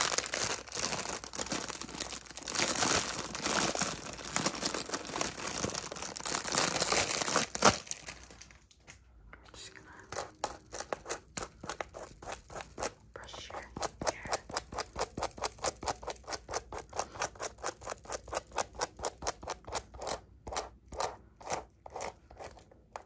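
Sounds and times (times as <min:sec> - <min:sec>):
fingertips tapping on phone: 0:09.9 - 0:23.0.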